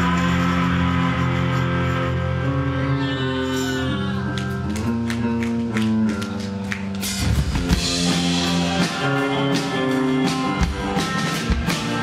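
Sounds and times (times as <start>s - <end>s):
rock band with noisy electric guitars: 0.0s - 12.0s.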